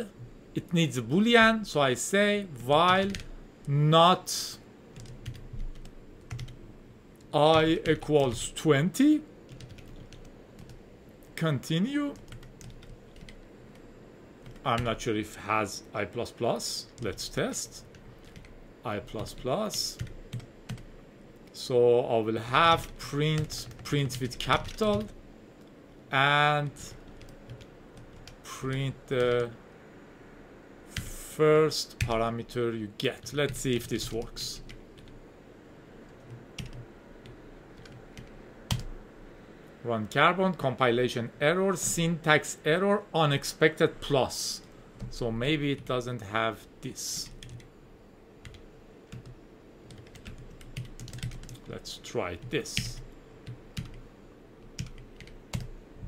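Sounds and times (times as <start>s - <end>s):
faint room hum: 0.0s - 56.0s
computer keyboard typing: 2.9s - 3.3s, 5.0s - 6.6s, 9.5s - 10.8s, 12.1s - 13.4s, 17.9s - 18.5s, 19.2s - 20.9s, 22.7s - 25.1s, 36.1s - 38.9s, 47.2s - 47.7s, 48.4s - 51.7s, 52.4s - 54.0s, 54.7s - 55.7s
keyboard key presses: 49.9s - 51.7s.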